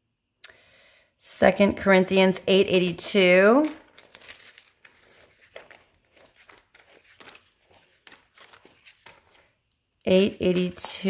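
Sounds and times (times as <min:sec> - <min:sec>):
paper pages rustling: 0:03.6 - 0:11.0.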